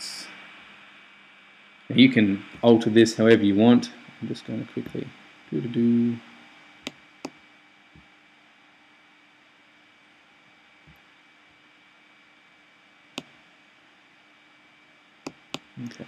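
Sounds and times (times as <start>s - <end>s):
faint hiss and hum: 0.0s - 16.0s.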